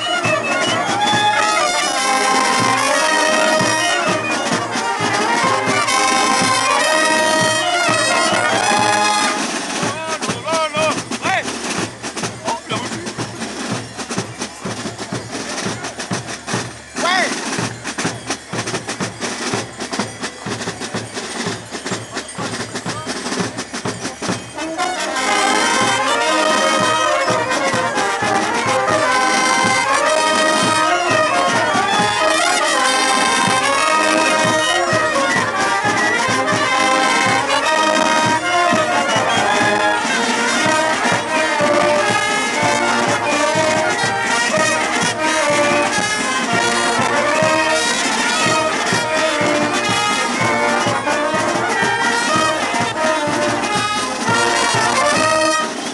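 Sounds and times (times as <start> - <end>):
brass band playing: 0.0 - 55.9
drum beats: 0.0 - 55.9.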